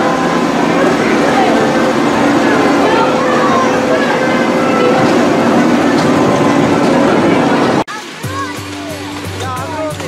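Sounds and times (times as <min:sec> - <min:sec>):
miniature train rolling: 0:00.0 - 0:07.8
faint voices: 0:00.0 - 0:10.0.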